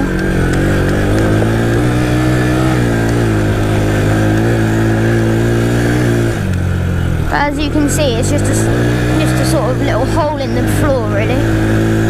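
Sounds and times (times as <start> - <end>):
quad engine under throttle: 0.0 - 12.0.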